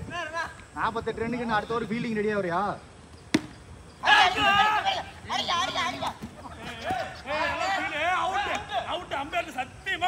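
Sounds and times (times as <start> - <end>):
cricket bat striking ball: 3.3 - 3.6
player shouting: 4.0 - 9.1.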